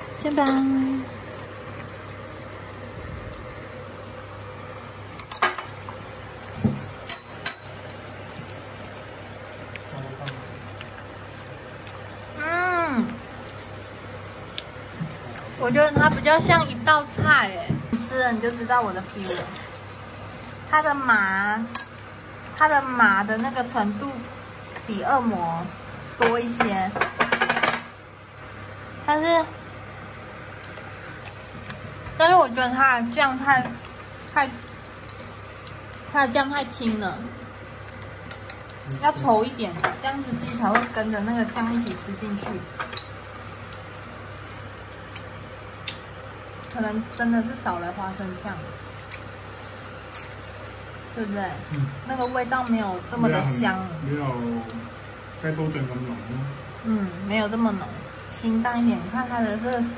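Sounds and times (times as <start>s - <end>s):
induction cooktop fan hum: 0.0s - 59.9s.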